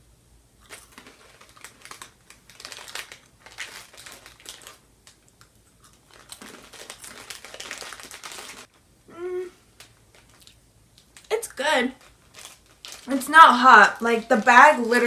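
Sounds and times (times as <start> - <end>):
plastic snack bag crinkling: 0.6 - 8.8, 9.7 - 15.0.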